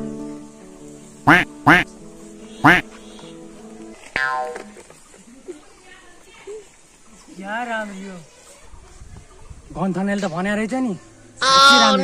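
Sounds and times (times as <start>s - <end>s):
soft background music: 0.0s - 4.2s
duck quacks: 1.3s - 1.9s, 2.6s - 2.9s, 11.4s - 12.0s
nasal call: 1.3s - 1.9s, 2.6s - 3.2s.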